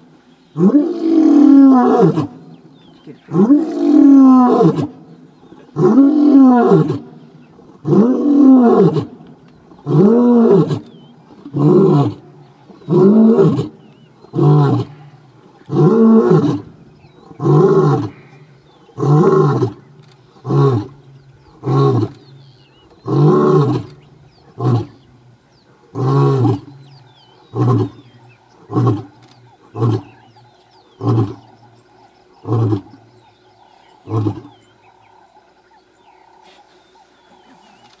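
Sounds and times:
lion roaring: 0:00.6 - 0:02.4, 0:03.2 - 0:18.4, 0:19.0 - 0:19.8, 0:20.4 - 0:22.2, 0:23.0 - 0:25.0, 0:25.9 - 0:31.8, 0:32.4 - 0:35.2.

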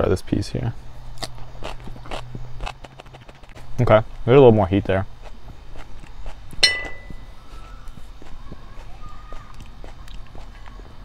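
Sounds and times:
chewing raw pepper crunches: 0:01.1 - 0:04.3, 0:05.0 - 0:10.8.

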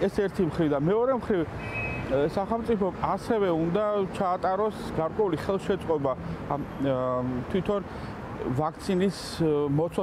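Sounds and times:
man speaking: 0:00.0 - 0:10.0
street traffic: 0:00.0 - 0:10.0.

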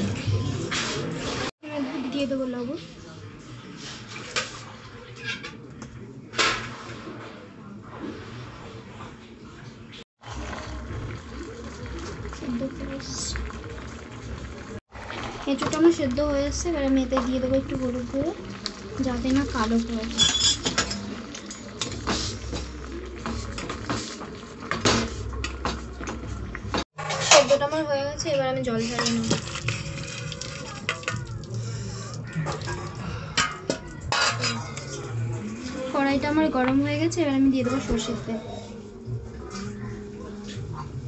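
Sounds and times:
metal spoon scraping a pan: 0:20.0 - 0:25.8, 0:27.0 - 0:27.7, 0:28.7 - 0:35.0.

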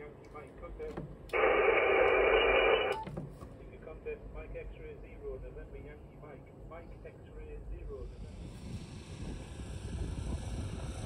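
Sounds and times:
radio static hiss: 0:01.3 - 0:03.0.

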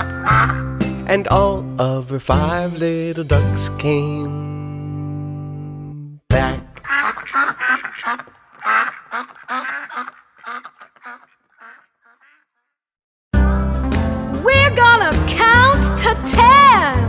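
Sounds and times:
ducks quacking: 0:00.0 - 0:00.7, 0:06.8 - 0:12.7
upbeat children's music: 0:00.0 - 0:07.0, 0:13.4 - 0:17.0.

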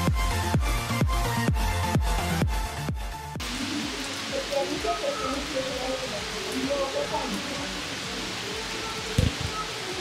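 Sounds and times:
heavy rain on pavement: 0:00.0 - 0:10.0.

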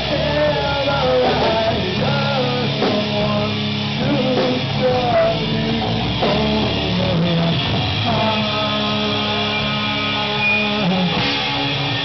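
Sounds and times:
bass guitar: 0:00.0 - 0:12.0
drums: 0:00.0 - 0:12.0
guitar chords: 0:00.0 - 0:12.0.

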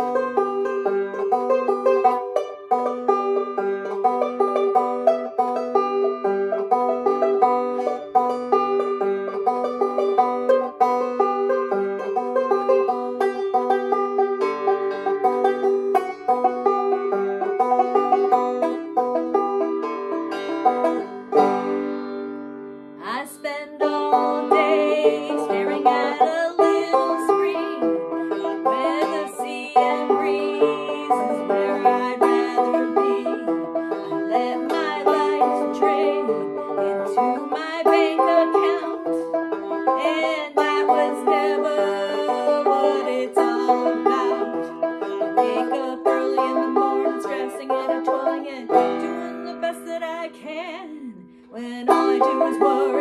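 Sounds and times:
banjo picked and strummed: 0:00.0 - 0:53.0.

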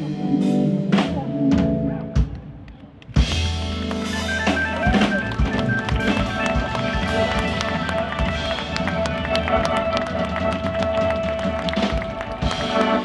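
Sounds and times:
live band playing: 0:00.0 - 0:13.0.

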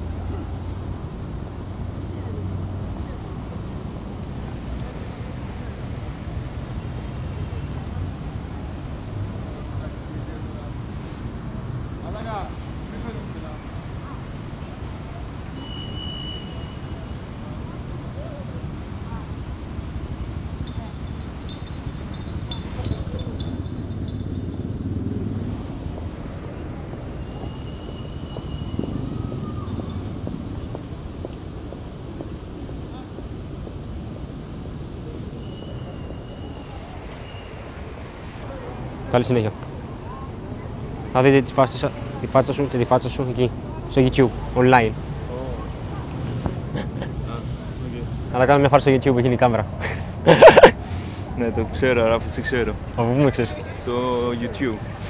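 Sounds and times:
faint voices: 0:00.0 - 0:55.0
traffic rumble: 0:00.0 - 0:55.0
thin high whistle: 0:15.5 - 0:17.3, 0:20.6 - 0:24.6, 0:27.1 - 0:30.0, 0:35.3 - 0:38.4.

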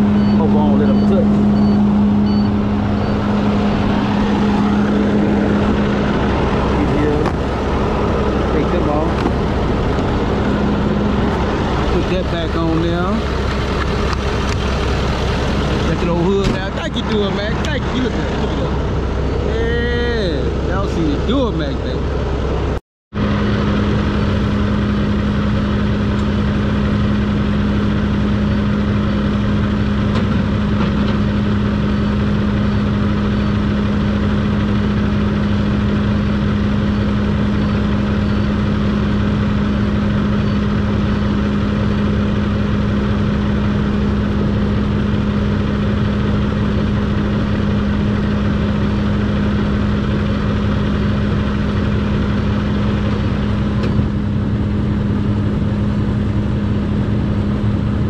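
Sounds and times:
diesel truck engine idling: 0:00.0 - 0:58.0.

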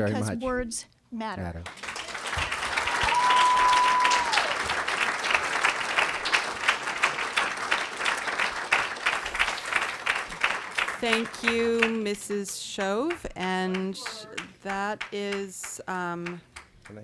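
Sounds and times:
audience applauding: 0:01.6 - 0:12.2.

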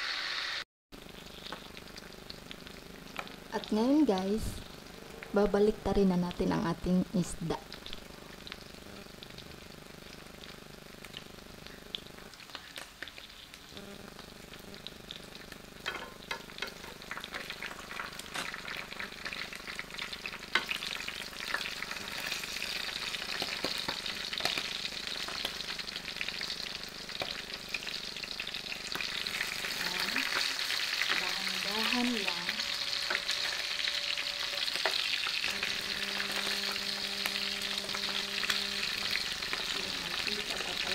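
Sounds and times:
fish sizzling in oil: 0:00.0 - 0:40.9
tongs clicking and scraping pan: 0:15.8 - 0:19.4, 0:20.5 - 0:20.8.

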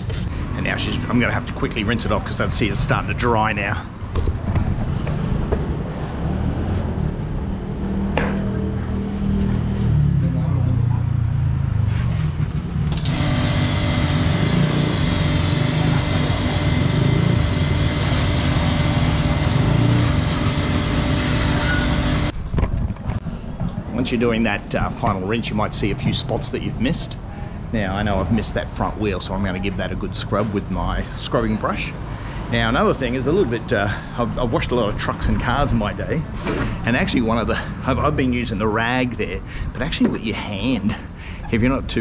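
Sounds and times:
steady hum: 0:12.9 - 0:22.4
hose spray hissing: 0:13.0 - 0:22.3.

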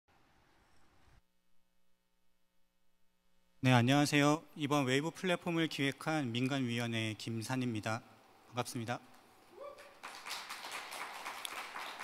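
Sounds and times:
hands clapping: 0:09.8 - 0:12.0.

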